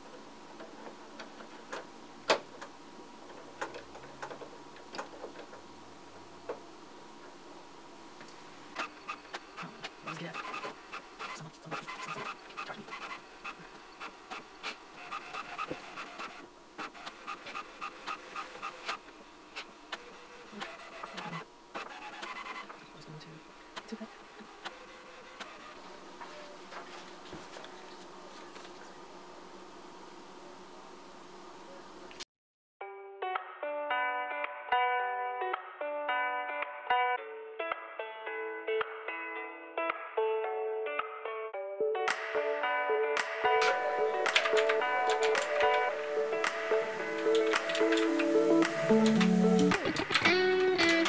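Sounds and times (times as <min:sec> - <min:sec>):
printer motors buzzing whir: 0:08.2 - 0:32.1, 0:43.6 - 0:51.0
printer rapid clicking: 0:08.8 - 0:22.8, 0:23.7 - 0:25.8, 0:43.6 - 0:51.0.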